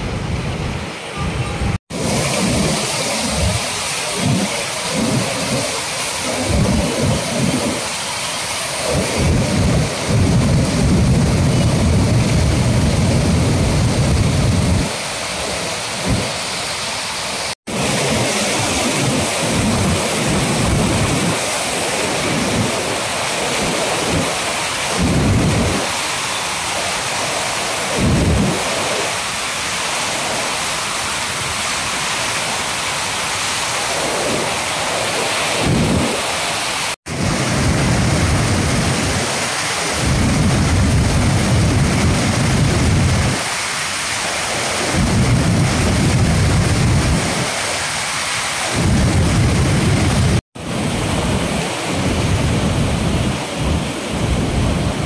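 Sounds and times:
turbulent water rushing: 0.0s - 55.0s.

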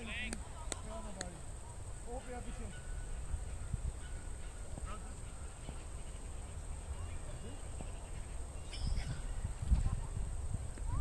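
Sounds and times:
distant voices calling: 0.0s - 11.0s
wind rumble on microphone: 2.5s - 11.0s.

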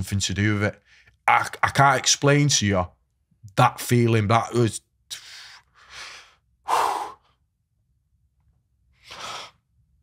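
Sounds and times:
man breathing out heavily: 5.2s - 7.3s, 9.0s - 9.6s.

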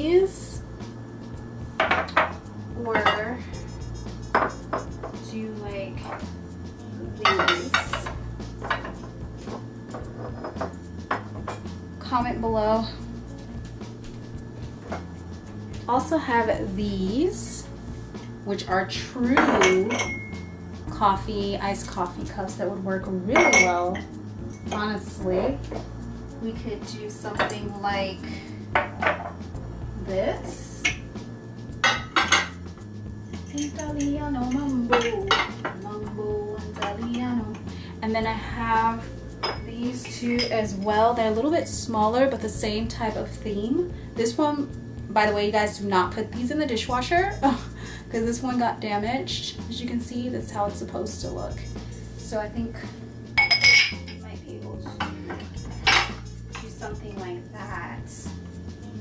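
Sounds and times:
glasses knocking on tile: 4.3s - 5.2s, 28.7s - 29.4s
glass clink: 19.4s - 20.5s, 23.4s - 24.7s, 31.8s - 32.6s, 53.4s - 54.2s.

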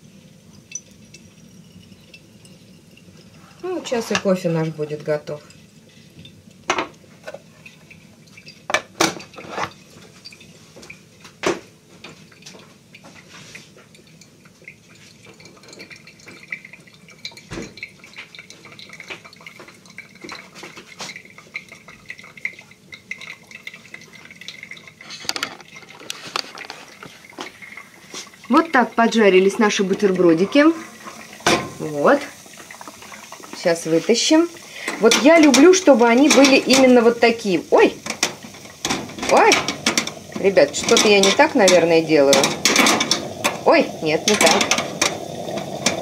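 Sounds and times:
coffee maker hissing and trickling: 0.0s - 46.0s.

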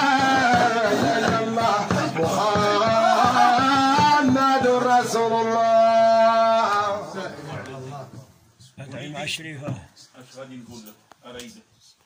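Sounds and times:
steady beats: 0.0s - 6.4s
men chanting together: 0.0s - 8.3s
low murmured talk: 6.1s - 12.0s.

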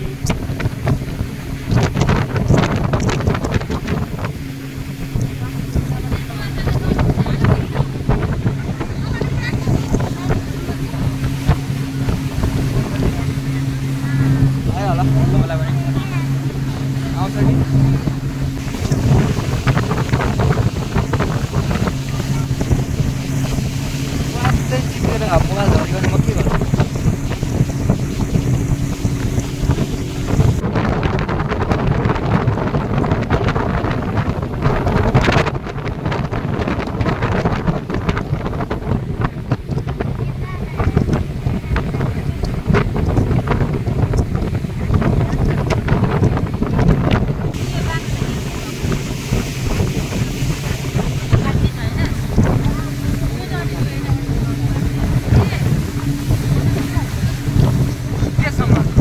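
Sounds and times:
motorboat engine running: 0.0s - 59.0s
water rushing past hull: 0.0s - 59.0s
wind buffeting microphone: 0.0s - 59.0s.

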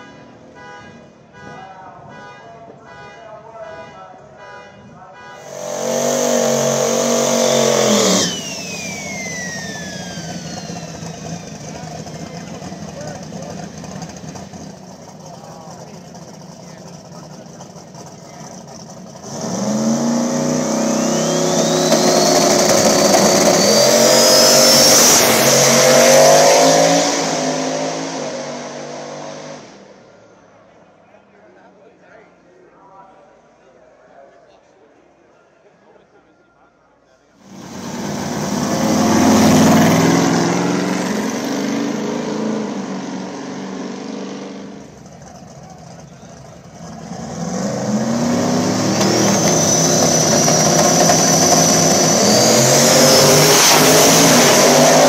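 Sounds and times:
race car engine revving: 5.3s - 29.9s, 37.4s - 55.0s
high whine: 5.4s - 12.0s, 20.6s - 27.8s.

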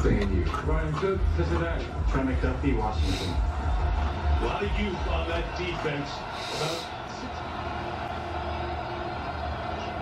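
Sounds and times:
football game on television: 0.0s - 10.0s.

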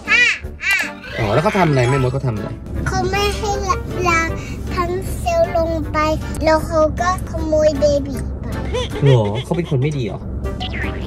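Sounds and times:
car cabin rumble: 2.6s - 11.0s.

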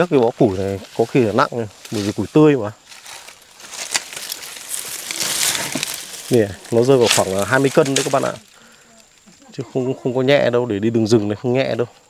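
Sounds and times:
firewood sticks rustling and cracking: 0.0s - 9.6s.

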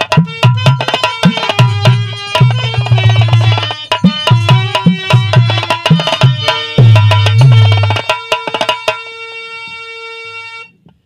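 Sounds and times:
harmonium reed note: 0.0s - 10.7s.

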